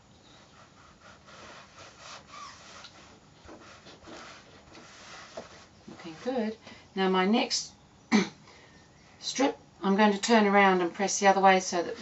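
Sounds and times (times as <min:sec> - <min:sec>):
iron rubbing over fabric: 0:00.4 - 0:06.6.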